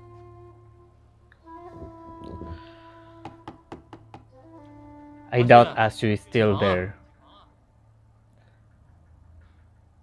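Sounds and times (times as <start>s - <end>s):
soft background music: 0.0s - 8.3s
knocks on wooden door: 3.2s - 4.3s.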